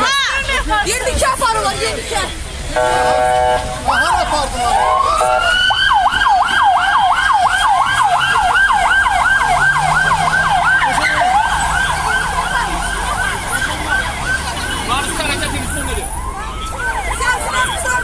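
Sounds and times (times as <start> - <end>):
police siren yelping: 2.8 - 18.0.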